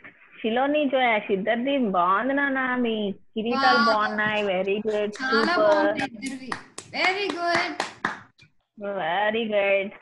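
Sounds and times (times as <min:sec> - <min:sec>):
voices: 0:02.7 - 0:08.0
hand clapping applause: 0:05.2 - 0:08.3.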